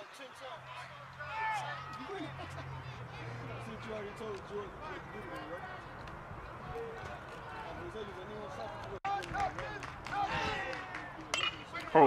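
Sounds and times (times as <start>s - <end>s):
spectators chatter: 0.0s - 12.0s.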